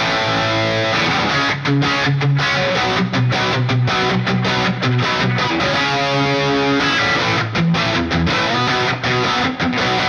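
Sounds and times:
electric guitar rhythm chords: 0.0 - 10.0.

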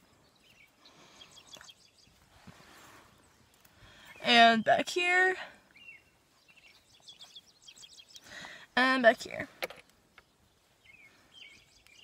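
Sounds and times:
distant birds chirping: 0.0 - 12.0.

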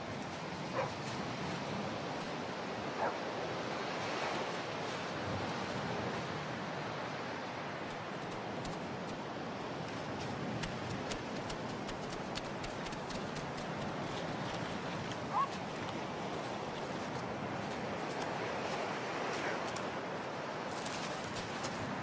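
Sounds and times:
ocean surf on a beach: 0.0 - 22.0.

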